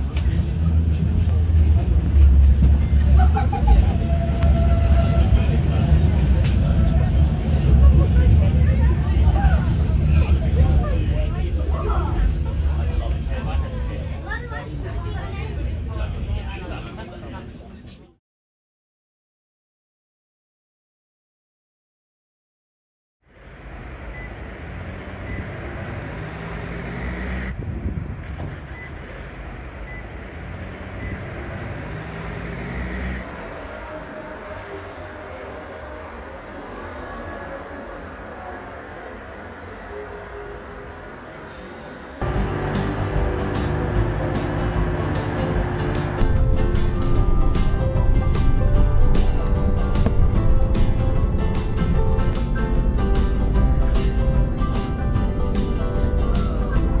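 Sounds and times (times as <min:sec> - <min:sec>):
traffic hum: 0:00.0 - 0:18.0, 0:23.3 - 0:57.0
passengers chattering faintly: 0:00.0 - 0:18.2, 0:33.2 - 0:57.0
tram low rumble: 0:00.0 - 0:18.2, 0:23.2 - 0:57.0
vehicle passing close: 0:23.5 - 0:27.6, 0:28.5 - 0:33.5, 0:42.2 - 0:51.8.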